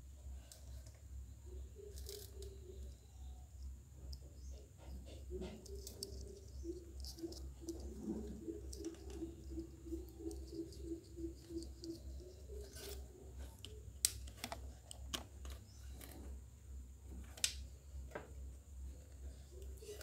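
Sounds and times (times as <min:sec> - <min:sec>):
steady low hum: 0:00.0 - 0:20.0
faint pulsed chirping: 0:00.2 - 0:13.9.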